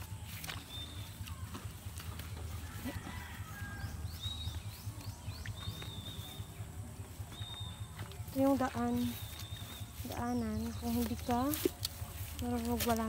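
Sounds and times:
birds chirping: 0:00.0 - 0:13.0
low rumble: 0:00.0 - 0:13.0.

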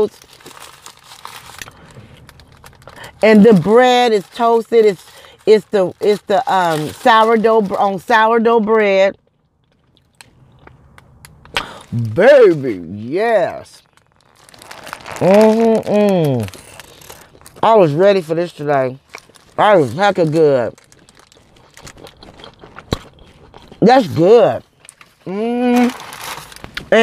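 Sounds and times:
paper wrapper rustling: 0:00.0 - 0:08.1, 0:12.2 - 0:22.9, 0:24.0 - 0:27.0
paper wrapper crinkling: 0:00.0 - 0:08.6, 0:09.3 - 0:27.0
close-up chewing: 0:20.7 - 0:23.8.

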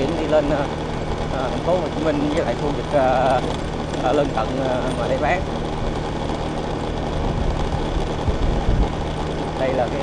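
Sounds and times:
low rumbles: 0:00.0 - 0:10.0
motor scooter engine running: 0:00.0 - 0:10.0
road and wind noise: 0:00.0 - 0:10.0.

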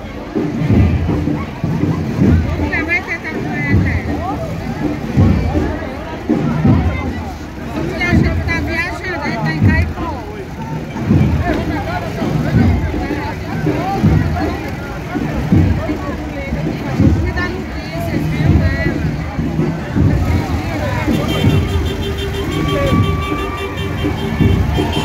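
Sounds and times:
crowd voices: 0:00.0 - 0:25.0
vehicle sound: 0:00.0 - 0:25.0
deep regular beat: 0:00.5 - 0:25.0.

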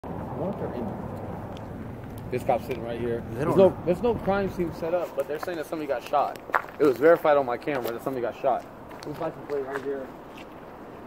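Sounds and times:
low vehicle rumble: 0:00.1 - 0:06.8.

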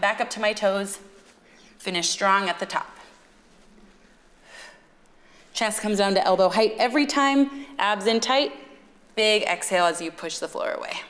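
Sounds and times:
woman breathing out: 0:04.4 - 0:05.5.

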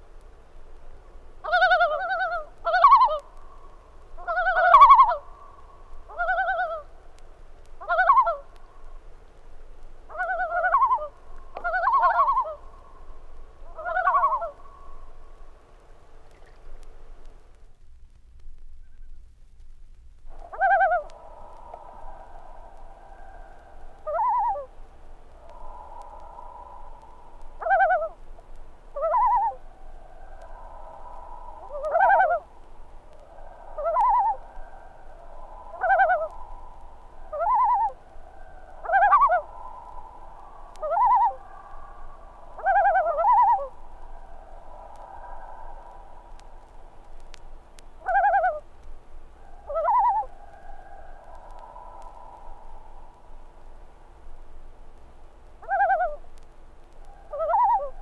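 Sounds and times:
faint steady background tone: 0:00.0 - 0:58.0.

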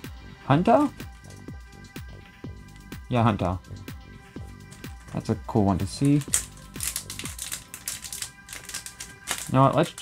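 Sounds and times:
foil wrapper crinkling: 0:05.9 - 0:10.0.

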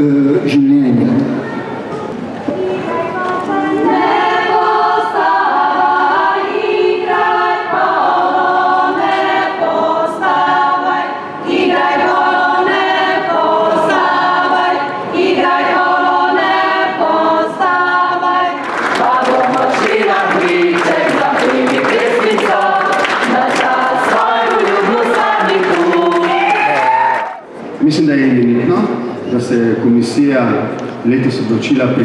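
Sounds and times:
unaccompanied group singing: 0:02.4 - 0:27.3.

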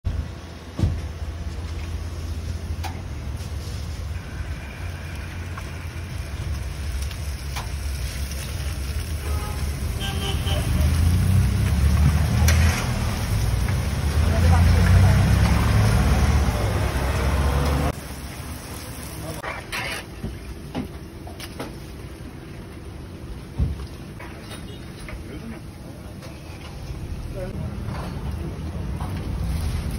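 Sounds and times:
batter sizzling in frying oil: 0:01.9 - 0:19.6.

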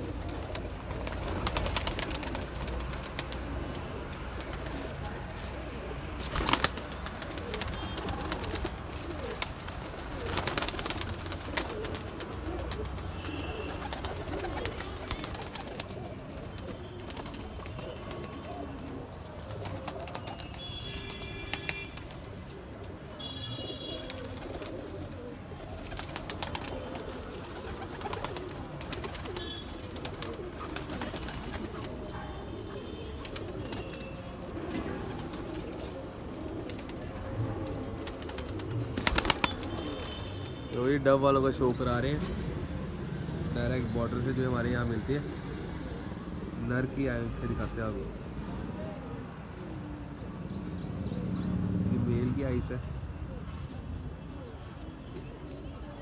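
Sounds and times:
pigeons cooing: 0:00.0 - 0:40.4.

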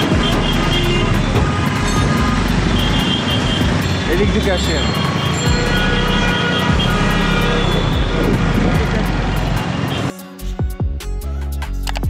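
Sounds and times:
vehicles running: 0:00.0 - 0:10.1
background music with a beat: 0:00.0 - 0:12.0.

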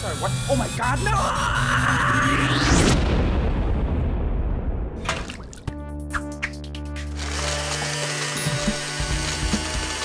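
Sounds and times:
cartoon blender whirring: 0:00.0 - 0:02.3, 0:07.0 - 0:10.0.

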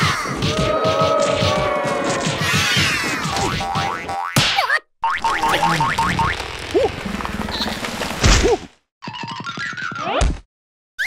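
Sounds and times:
comic character vocalizations: 0:05.3 - 0:07.0.

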